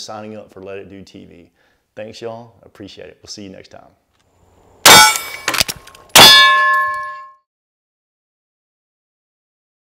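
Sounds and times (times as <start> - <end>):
loud metallic clangs: 4.9 - 7.4.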